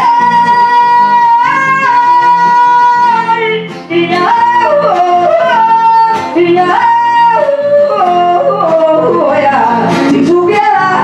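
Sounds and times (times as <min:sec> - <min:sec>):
acoustic guitar: 0:00.0 - 0:11.0
woman singing yodel-like: 0:00.0 - 0:11.0.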